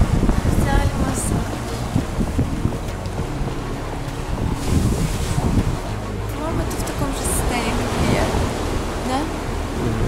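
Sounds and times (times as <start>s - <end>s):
low rushing noise: 0.0s - 10.0s
woman speaking: 0.5s - 1.5s, 6.3s - 8.4s, 9.0s - 9.4s.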